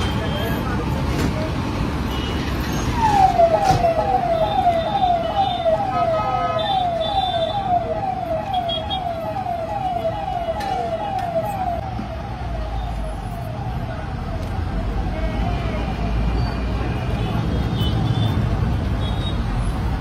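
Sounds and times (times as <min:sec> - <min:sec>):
traffic rumble: 0:00.0 - 0:20.0
electronic siren: 0:03.0 - 0:16.1.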